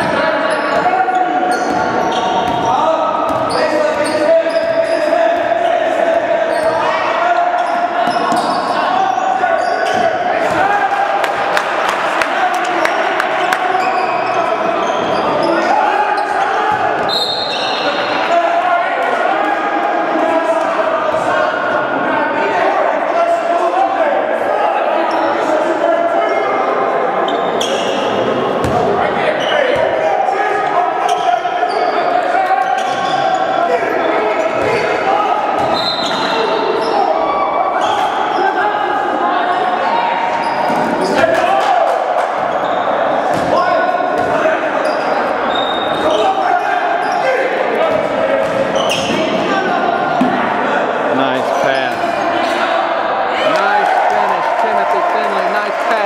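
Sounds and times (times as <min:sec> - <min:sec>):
sneaker squeaks: 0:00.0 - 0:05.8, 0:06.5 - 0:10.2, 0:13.7 - 0:18.1, 0:27.2 - 0:30.0, 0:31.0 - 0:35.0, 0:35.6 - 0:38.6, 0:40.3 - 0:41.3, 0:42.4 - 0:49.4
voices in a gym: 0:00.0 - 0:56.0.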